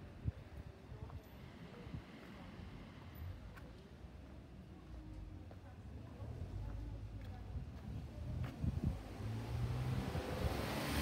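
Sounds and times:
road traffic rumble: 0.0 - 11.0
vehicle passing hiss: 9.3 - 11.0.

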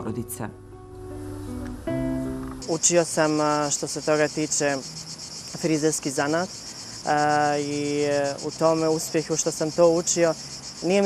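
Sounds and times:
insect chorus: 1.3 - 11.0.

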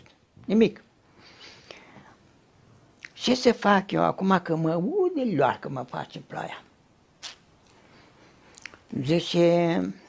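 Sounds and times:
mouth click: 7.2 - 7.8.

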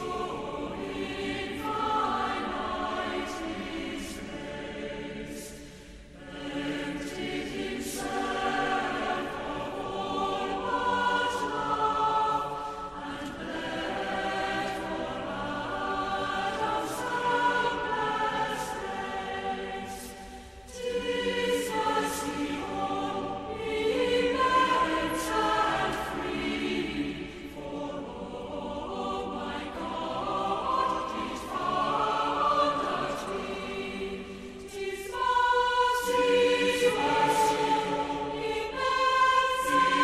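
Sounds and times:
choir singing: 0.0 - 40.0.

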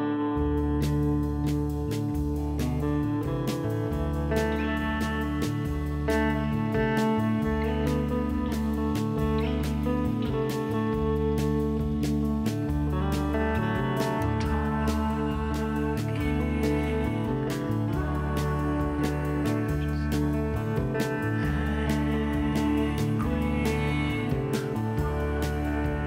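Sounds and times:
background music with bass line: 0.0 - 26.0.

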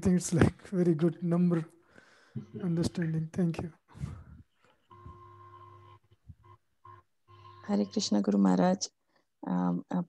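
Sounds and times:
person speaking: 0.0 - 1.8, 2.4 - 4.4
two-pitch electronic tone: 4.8 - 8.2.

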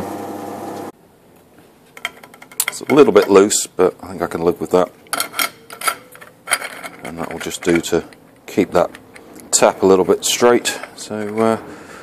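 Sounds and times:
metallic clicks and clinks: 2.0 - 3.4, 5.0 - 9.7.

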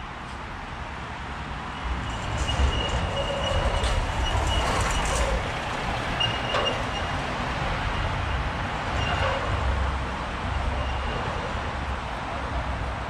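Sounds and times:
heavy lorry passing: 0.8 - 13.0.

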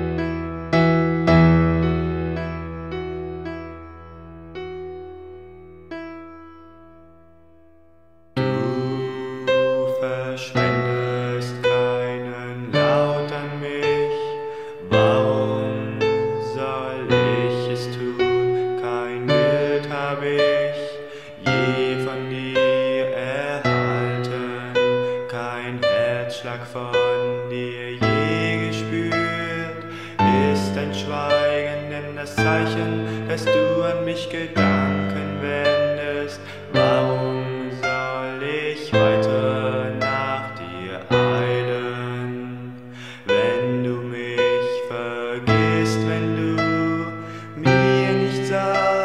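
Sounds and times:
slow piano music: 0.0 - 49.0.

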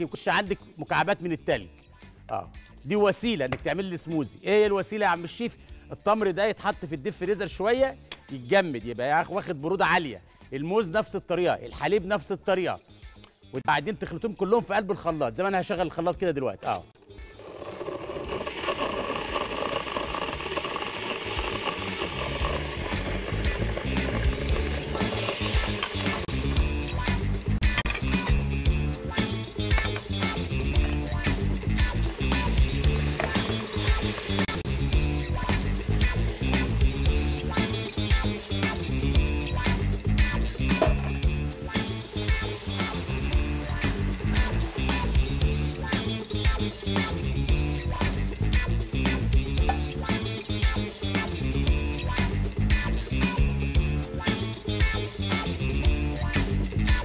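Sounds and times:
background music with steady beat: 0.0 - 17.2, 18.6 - 57.0
electric blender running: 17.4 - 26.6, 32.1 - 34.6.

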